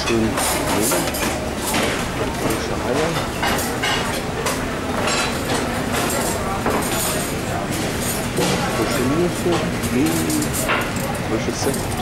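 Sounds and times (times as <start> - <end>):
restaurant rumble: 0.0 - 12.0.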